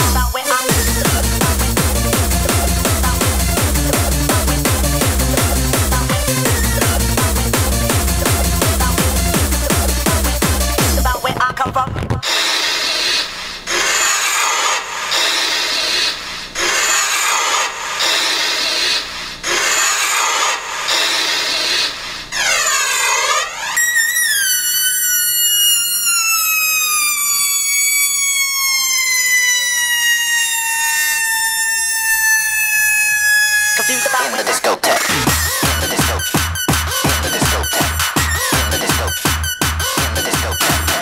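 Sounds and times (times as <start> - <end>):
synth tone sliding down: 22.4 - 34.0.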